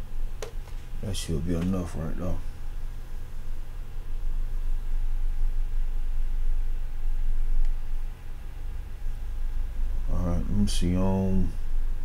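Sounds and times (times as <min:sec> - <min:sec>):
faint hum: 0:00.0 - 0:12.0
low background rumble: 0:00.0 - 0:12.0.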